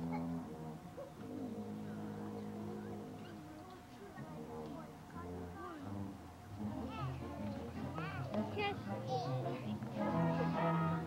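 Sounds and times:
low sustained notes: 0.0 - 11.0.

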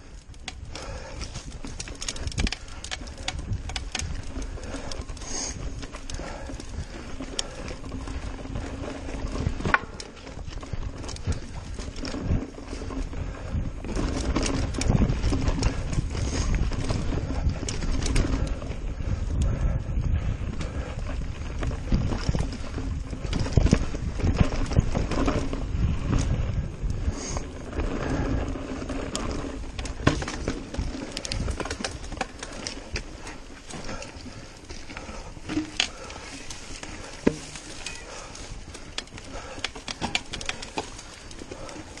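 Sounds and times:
mountain bike rattling: 0.0 - 42.0
wind on microphone: 0.0 - 42.0
bike knocking over rocks: 5.7 - 12.9, 29.1 - 42.0.

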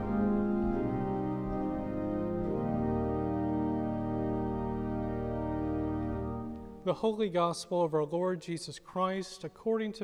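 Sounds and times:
organ chord held: 0.0 - 7.4.

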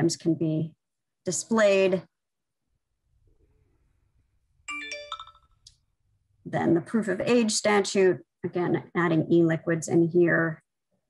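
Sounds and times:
electronic chime: 4.7 - 5.6.

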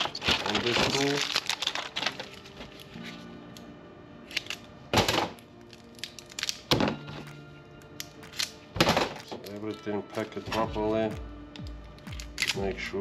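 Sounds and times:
quiet background music: 0.0 - 13.0.

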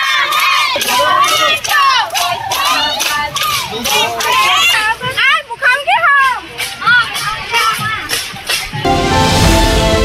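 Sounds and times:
crowd of young voices shouting: 0.0 - 5.1.

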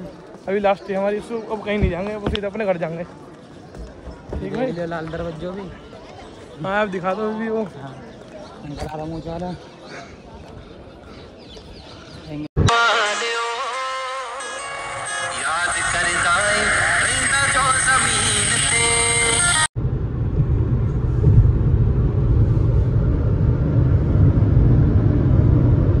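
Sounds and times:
music with singing voice: 12.6 - 19.7.

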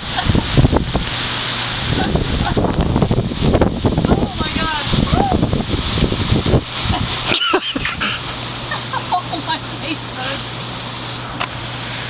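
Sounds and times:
wind rushing: 0.0 - 8.2
bubbling hot-tub water: 0.0 - 12.0.

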